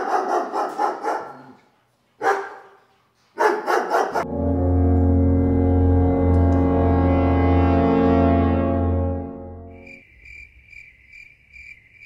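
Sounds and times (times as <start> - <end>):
dog barking with echo: 0.0 - 1.5, 2.2 - 2.8, 3.4 - 4.3
steady low droning tone: 4.2 - 9.7.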